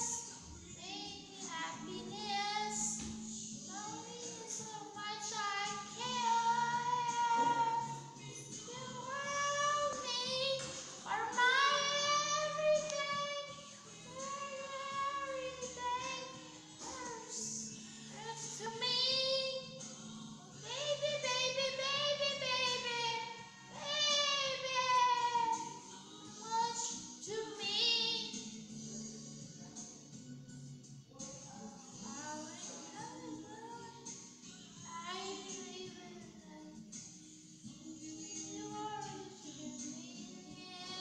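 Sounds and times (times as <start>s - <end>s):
woman singing a slow ballad: 0.0s - 30.2s, 31.0s - 41.0s
recorded backing track: 0.0s - 41.0s.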